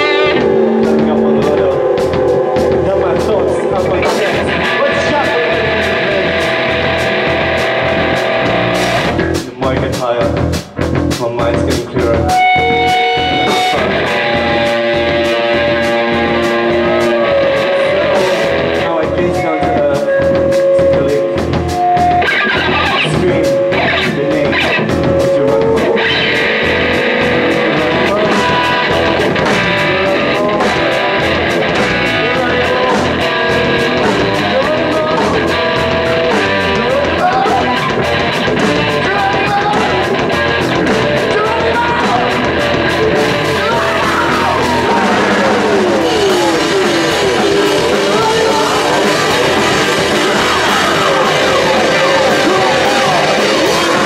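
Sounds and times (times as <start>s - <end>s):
person singing lead vocal: 0.0s - 8.4s, 11.5s - 54.0s
bass guitar: 0.0s - 54.0s
drums keeping a steady beat: 0.0s - 54.0s
electric guitar: 0.0s - 54.0s.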